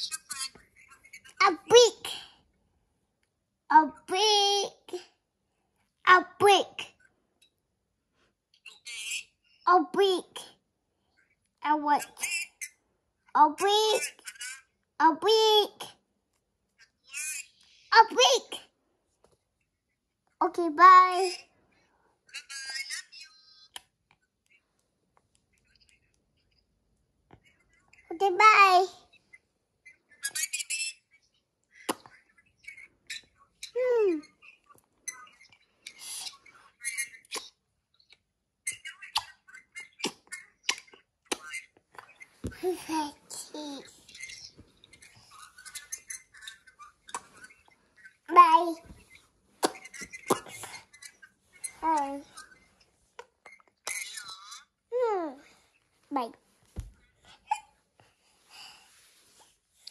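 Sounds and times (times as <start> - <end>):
soft breathing: 57.0 - 59.9.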